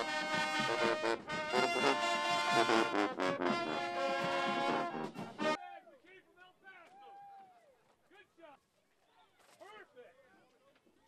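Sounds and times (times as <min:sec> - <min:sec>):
marching band brass music: 0:00.0 - 0:05.6.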